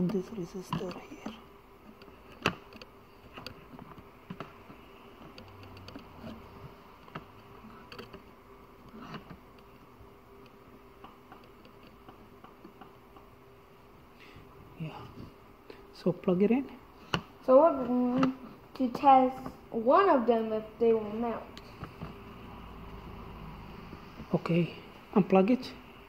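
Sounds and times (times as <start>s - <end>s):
small tools clicking and tapping: 0.0s - 6.4s, 7.0s - 8.3s, 10.4s - 13.3s
faint electrical hum: 0.0s - 26.0s.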